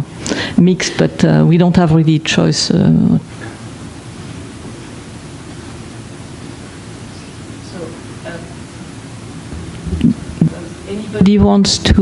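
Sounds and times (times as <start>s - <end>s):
room noise hiss and hum: 0.0s - 12.0s.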